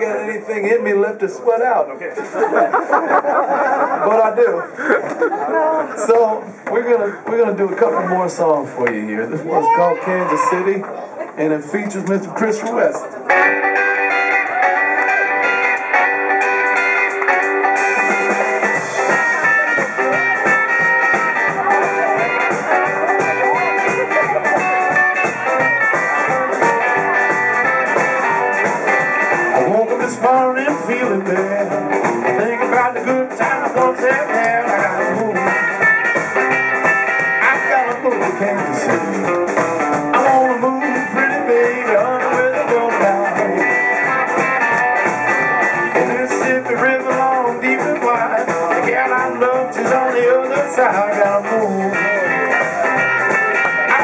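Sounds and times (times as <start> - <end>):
bass guitar: 0.0 - 54.0
electric guitar: 12.0 - 54.0
drum kit: 13.3 - 54.0.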